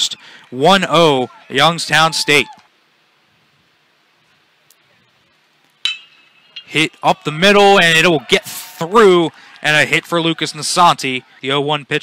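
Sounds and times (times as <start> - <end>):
faint ballpark ambience: 0.0 - 12.0
metal bat hitting ball: 5.8 - 7.0.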